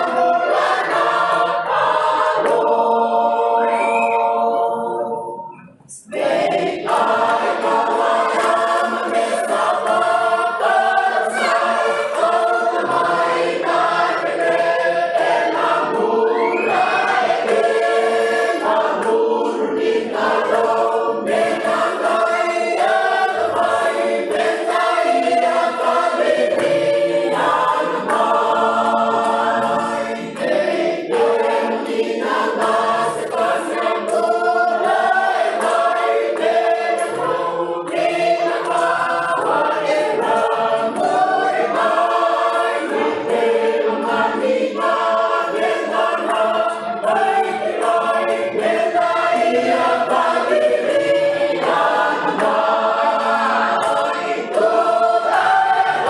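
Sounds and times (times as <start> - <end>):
congregation singing in harmony: 0.0 - 56.0.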